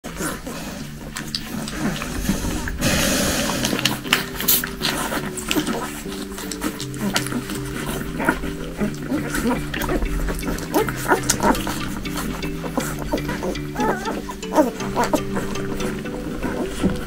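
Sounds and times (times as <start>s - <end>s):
noisy rustle: 0.0s - 13.4s
background music low notes: 0.0s - 17.0s
puppies squeaking: 3.6s - 17.0s.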